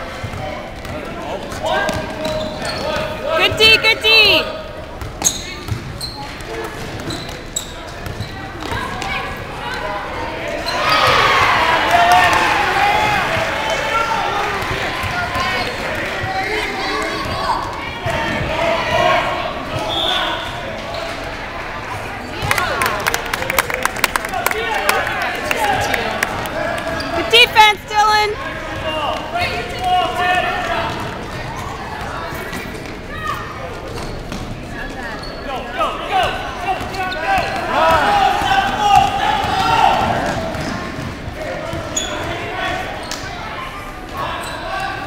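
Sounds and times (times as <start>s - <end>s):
people talking and shouting: 0.0s - 45.0s
sneakers squeaking: 0.1s - 11.4s, 14.6s - 18.5s, 19.7s - 22.7s, 26.6s - 45.0s
basketball bouncing on gym floor: 5.0s - 7.4s
spectators calling out: 26.8s - 28.4s.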